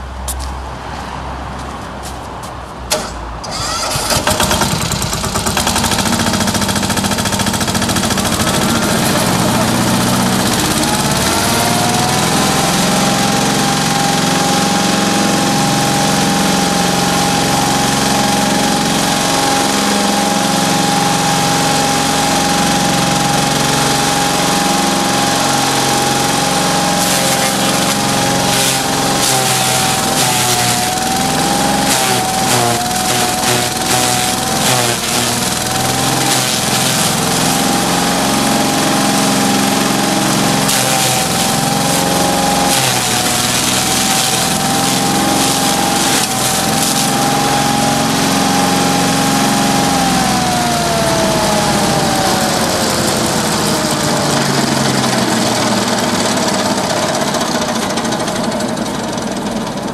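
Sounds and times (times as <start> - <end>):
tractor engine running: 2.0 - 59.9
crusher rotor whine: 7.6 - 13.3, 26.7 - 56.0
dry stalks being ground: 26.9 - 48.1.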